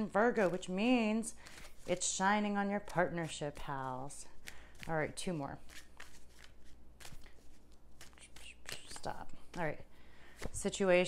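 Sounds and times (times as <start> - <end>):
cards being shuffled: 0.3 - 10.8.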